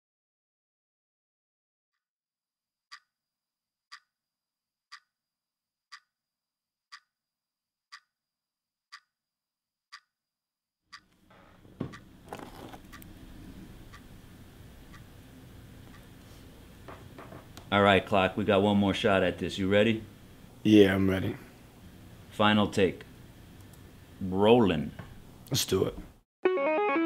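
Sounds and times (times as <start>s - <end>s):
clock ticking: 2.9s - 3.1s, 3.9s - 4.1s, 4.9s - 5.2s, 5.9s - 6.2s, 6.9s - 7.1s, 7.9s - 8.1s, 8.9s - 9.1s, 9.9s - 10.1s, 13.9s - 14.1s, 14.9s - 15.1s
room background hum: 11.0s - 26.2s
knocks and rustles: 16.8s - 17.6s.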